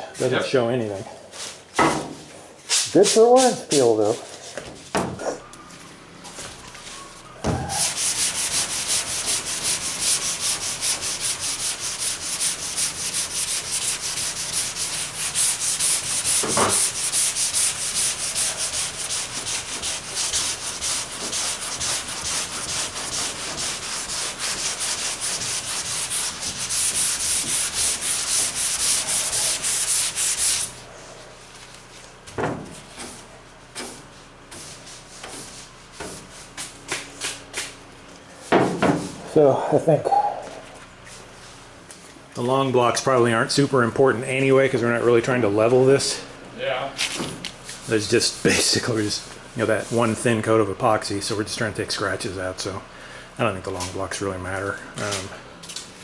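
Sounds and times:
sandpaper rasping on sanding block: 0:02.7 - 0:04.0, 0:07.6 - 0:30.8.

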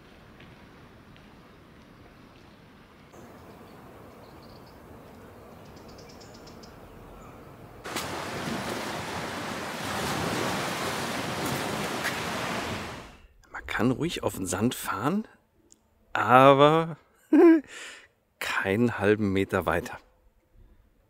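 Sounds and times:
faint outdoor ambience: 0:00.0 - 0:21.0
wind: 0:00.0 - 0:21.0
surf rushing at the shore: 0:07.9 - 0:13.2.

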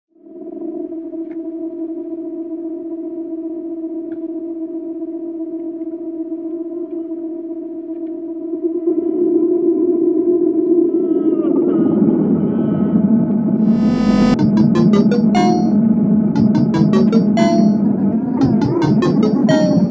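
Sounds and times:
falling synth glide: 0:13.6 - 0:15.8
stuttering electronic hits: 0:13.6 - 0:15.8
sustained synth drone: 0:13.6 - 0:19.9.

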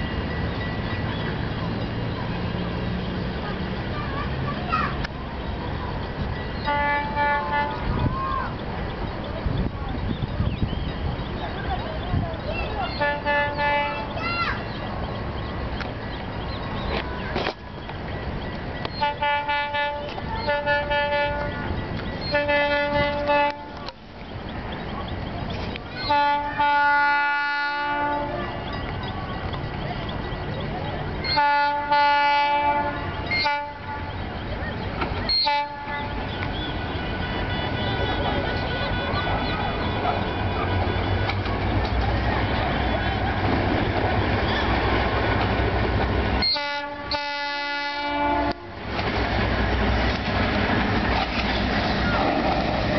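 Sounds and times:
locomotive engine rumbling: 0:00.0 - 0:52.9
distant locomotive air horn blast: 0:06.6 - 0:07.9, 0:13.0 - 0:14.2, 0:19.0 - 0:23.8, 0:26.0 - 0:28.7, 0:31.2 - 0:34.2, 0:35.3 - 0:41.6, 0:46.4 - 0:48.8.

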